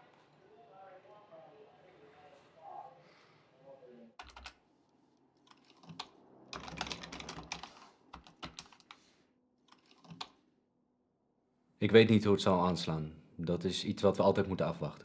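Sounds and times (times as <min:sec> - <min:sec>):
computer keyboard typing: 0:04.2 - 0:04.6, 0:05.4 - 0:09.0, 0:09.7 - 0:10.4.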